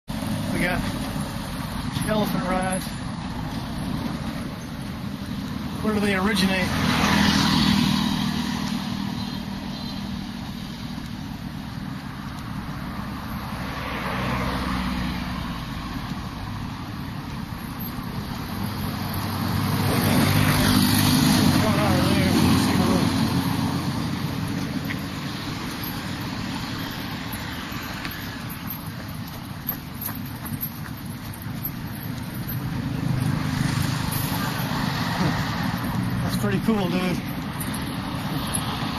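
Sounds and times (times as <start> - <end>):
road vehicle rumbling: 0.0 - 38.9
man speaking: 2.0 - 3.0, 5.8 - 6.8, 21.4 - 23.3, 36.2 - 37.4
bus passing close by: 6.6 - 29.9, 31.1 - 38.9.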